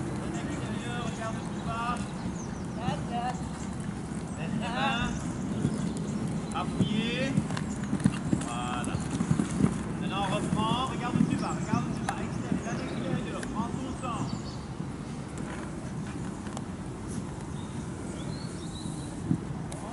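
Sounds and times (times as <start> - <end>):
hoofbeats on sand: 3.3 - 13.8.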